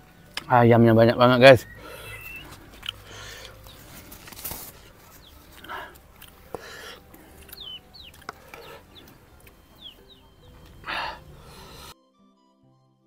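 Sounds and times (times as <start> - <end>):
chickens clucking: 1.2 - 11.9
rustling: 2.2 - 7.6.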